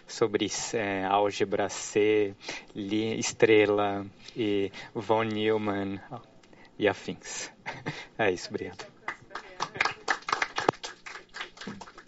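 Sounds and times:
audience clapping: 8.8 - 12.0.

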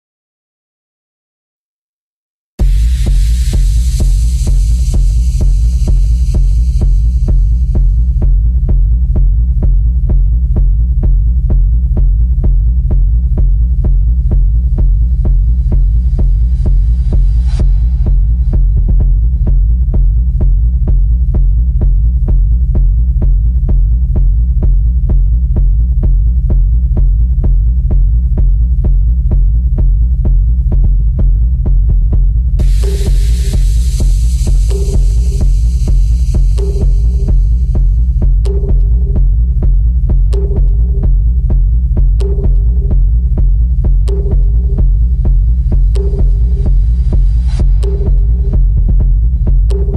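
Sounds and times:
deep throbbing bass pulse: 2.6 - 49.9.

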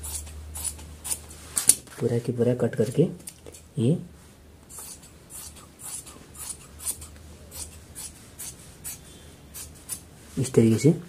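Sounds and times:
shears snipping fabric: 0.0 - 1.8, 4.7 - 10.1.

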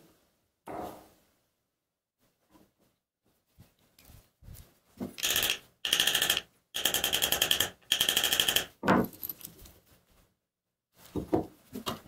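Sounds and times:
rapid metallic clicking of clamp screw: 5.2 - 8.7.

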